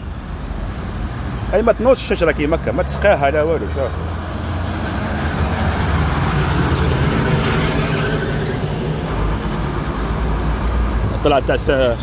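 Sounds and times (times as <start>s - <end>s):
bus engine passing: 0.0s - 12.0s
road traffic: 0.0s - 12.0s.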